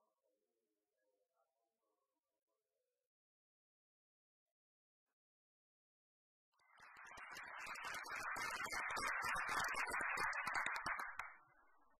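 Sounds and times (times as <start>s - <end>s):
audience applauding: 7.0s - 11.4s.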